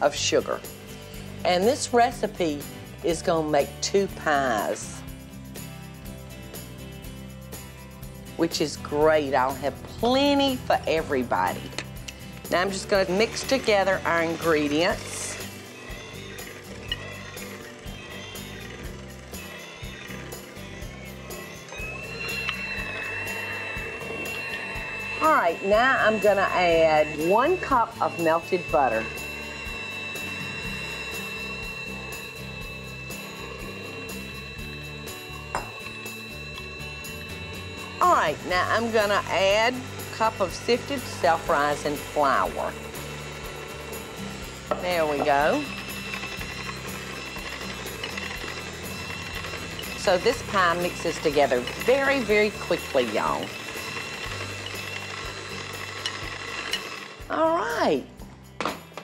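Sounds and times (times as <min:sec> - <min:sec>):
background music: 0:00.0 - 0:59.0
electric hand mixer whining: 0:08.4 - 0:57.6.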